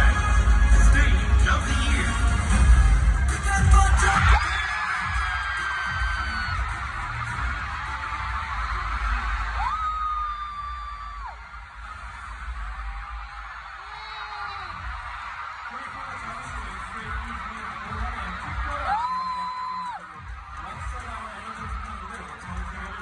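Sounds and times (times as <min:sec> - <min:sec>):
crowd screaming and cheering: 0:00.0 - 0:23.0
music over sound system: 0:00.0 - 0:23.0.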